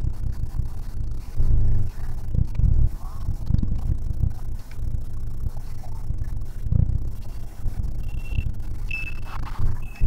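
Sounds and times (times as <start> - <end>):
thin high tone: 8.0 - 10.0.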